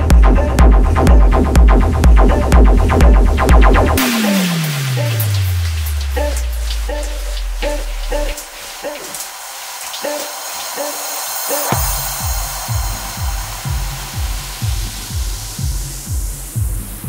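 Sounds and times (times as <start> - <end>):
kick drum and bass: 0.0 - 4.2, 11.7 - 17.0
synth stabs: 0.0 - 17.0
rising noise sweep: 3.6 - 17.0.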